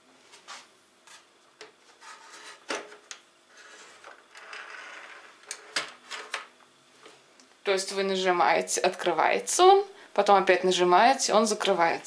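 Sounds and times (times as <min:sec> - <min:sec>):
rubbing sliding sound: 0:01.9 - 0:02.7, 0:03.5 - 0:05.2.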